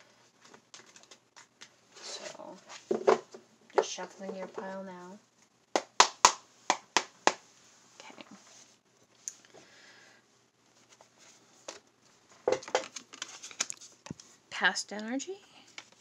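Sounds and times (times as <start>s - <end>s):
cards shuffling: 0.4s - 2.2s, 12.6s - 14.3s.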